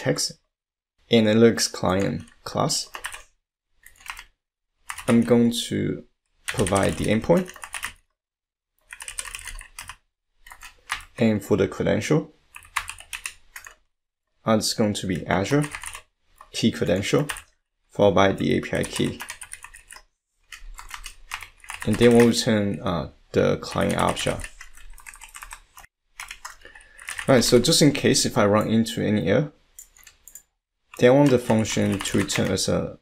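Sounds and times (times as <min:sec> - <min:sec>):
computer keyboard typing: 0:01.9 - 0:05.3, 0:06.5 - 0:08.0, 0:08.8 - 0:11.2, 0:12.6 - 0:13.8, 0:15.5 - 0:17.5, 0:18.8 - 0:22.4, 0:23.7 - 0:27.8, 0:29.8 - 0:32.6.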